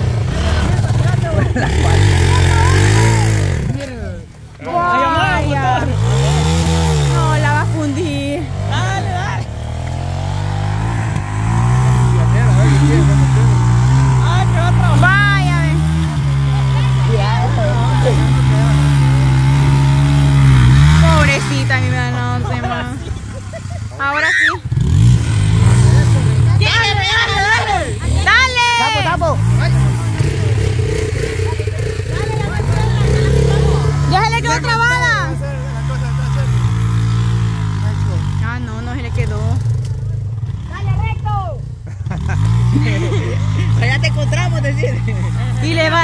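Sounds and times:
motorcycle engine revving: 0.0 - 46.0.

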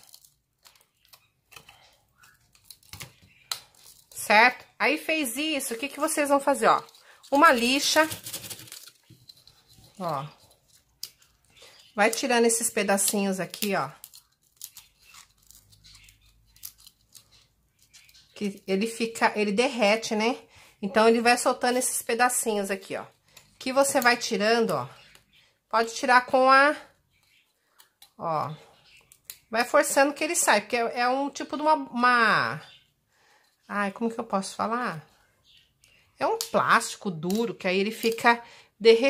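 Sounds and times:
plastic crackling: 0.0 - 18.8.

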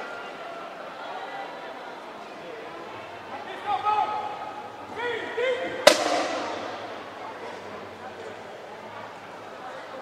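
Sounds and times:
sharp bang in a hall: 5.8 - 7.8.

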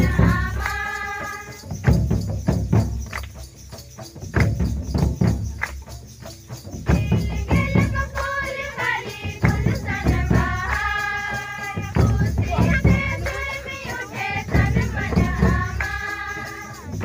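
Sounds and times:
women singing: 0.0 - 1.9, 6.9 - 17.0
rhythmic percussion strokes: 0.0 - 17.0.

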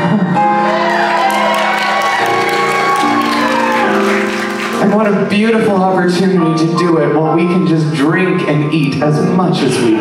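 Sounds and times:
grand piano chords: 0.0 - 10.0
light audience applause: 0.6 - 5.3.

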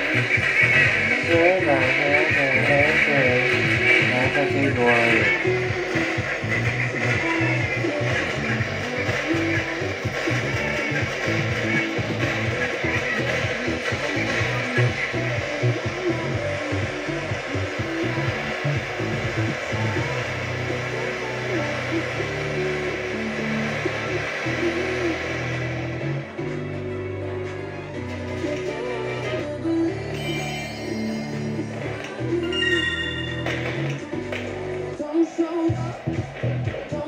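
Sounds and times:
rattling mechanical whir: 0.0 - 26.4
held bass notes: 0.0 - 30.1
music from radio: 0.0 - 37.0.

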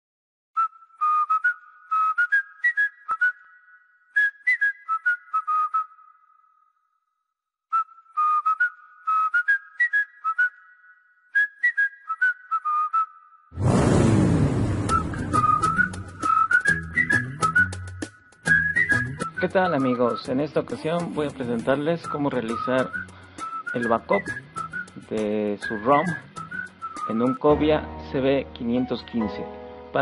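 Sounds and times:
whistled tune: 0.6 - 6.8, 7.7 - 13.5, 14.6 - 30.0
loud falling sweep: 13.6 - 16.3.

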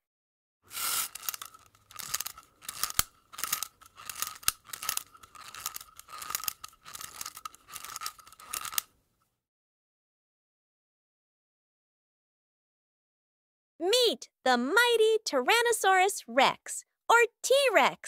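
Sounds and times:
dry crunching scraping strokes: 0.7 - 8.8.

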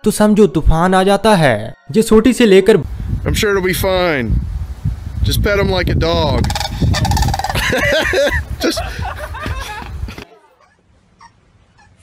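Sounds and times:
crane calling loudly: 6.4 - 8.3.

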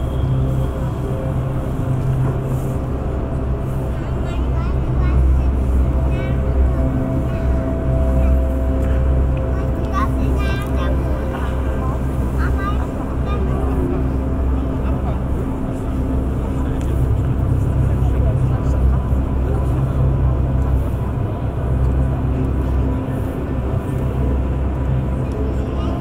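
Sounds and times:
deep hall rumble: 0.0 - 26.0.

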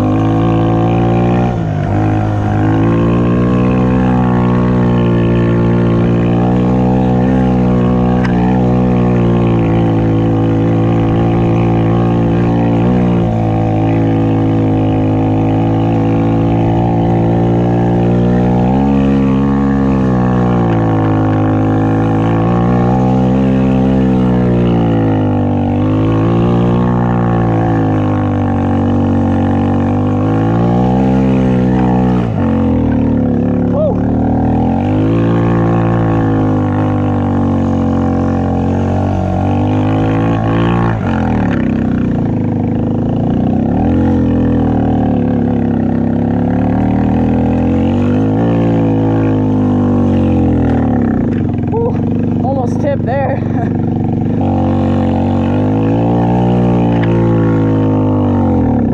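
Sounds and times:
atv engine revving: 0.0 - 58.9.

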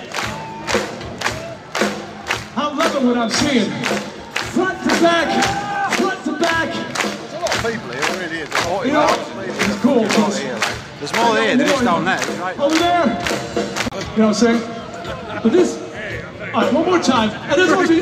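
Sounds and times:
drum hits: 0.2 - 14.2
crowd shouting: 4.3 - 6.8.

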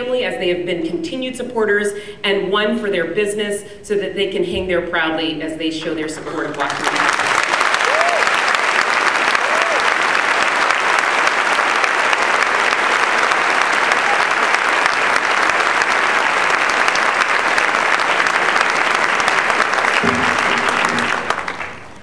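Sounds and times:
audience applauding: 6.5 - 22.0.

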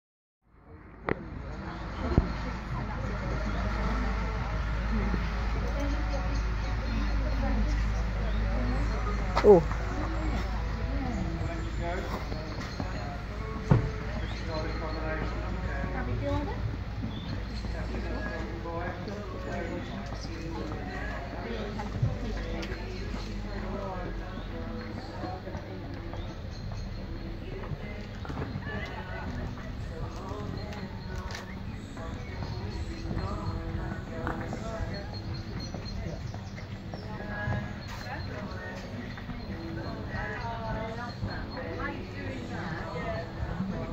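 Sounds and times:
faint distant voices: 0.5 - 43.9
people talking in background: 0.5 - 43.9.

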